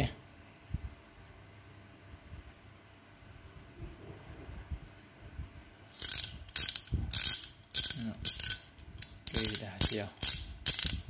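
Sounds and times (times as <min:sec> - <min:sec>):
ratchet clicking: 0:06.0 - 0:11.0.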